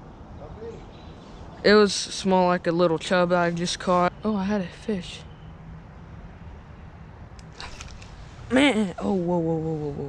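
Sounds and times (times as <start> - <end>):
brief rustle: 7.5 - 8.2.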